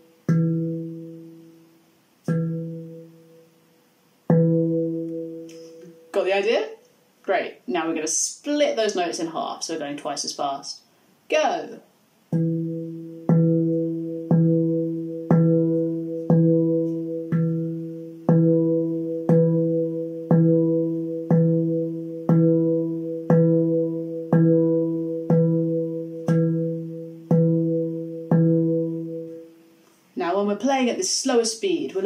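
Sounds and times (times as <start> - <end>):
handpan note ringing: 0.0 - 3.6, 4.3 - 6.1, 12.3 - 29.7.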